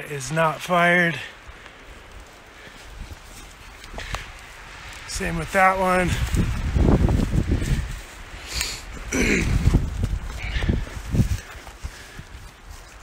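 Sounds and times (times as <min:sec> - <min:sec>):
footsteps through undergrowth: 0:00.4 - 0:13.0
brushing through ferns: 0:00.6 - 0:13.0
wind gusting over microphone: 0:01.3 - 0:13.0.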